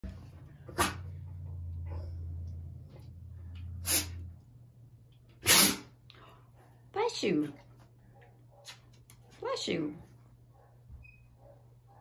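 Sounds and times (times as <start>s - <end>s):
dog sneezing: 0.7s - 1.1s, 3.8s - 4.2s, 5.4s - 6.0s
dog puff of breath: 3.8s - 4.2s, 5.4s - 6.6s.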